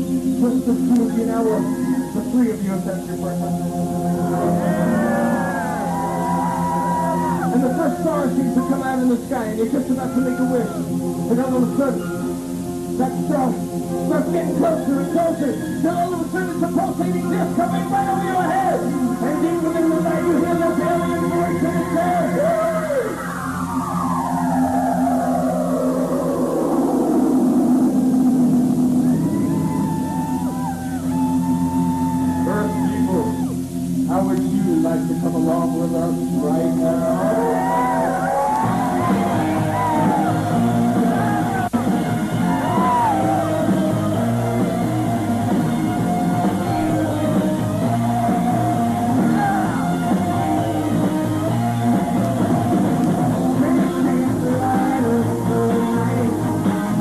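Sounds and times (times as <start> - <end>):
synthesized falling swoop: 0.0 - 9.4, 21.4 - 53.6
live rock band playing: 0.0 - 25.0, 26.7 - 57.0
warbling bending tones: 0.0 - 56.6
electric guitar: 0.0 - 57.0
low steady drone: 0.0 - 57.0.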